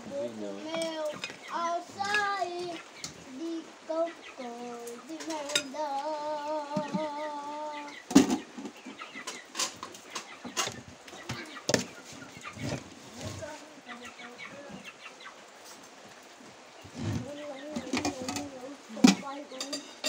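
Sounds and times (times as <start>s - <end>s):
chickens clucking: 0.0s - 20.0s
metal spoon clinking on dishes: 5.4s - 5.8s, 19.1s - 20.0s.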